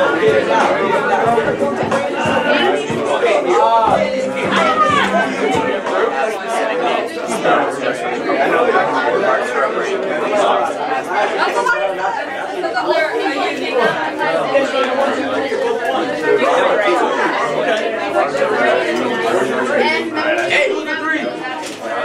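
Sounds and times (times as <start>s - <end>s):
classroom chatter: 0.0s - 22.0s.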